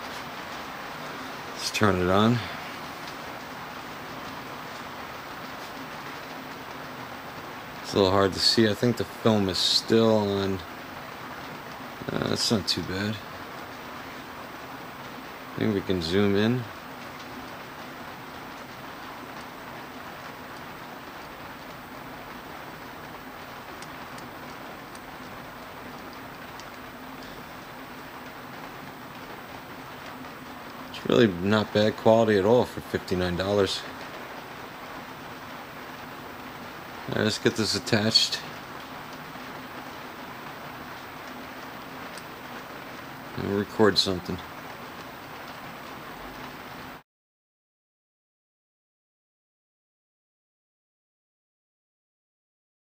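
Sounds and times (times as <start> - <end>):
ventilation hiss: 0.0 - 47.0.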